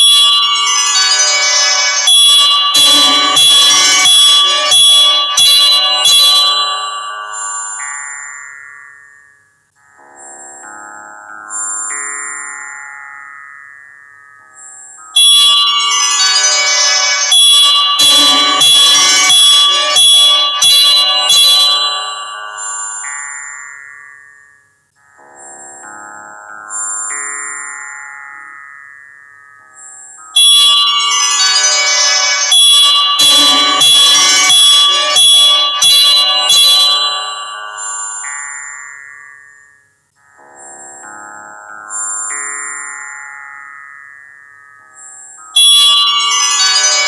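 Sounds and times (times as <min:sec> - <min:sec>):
music of struck ringing notes: 0:00.0 - 0:07.6, 0:15.2 - 0:22.8, 0:30.7 - 0:38.2.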